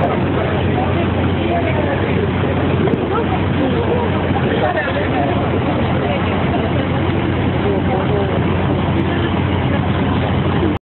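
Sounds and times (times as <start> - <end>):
idling vehicle engine hum: 0.0 - 10.8
many voices talking: 0.0 - 10.8.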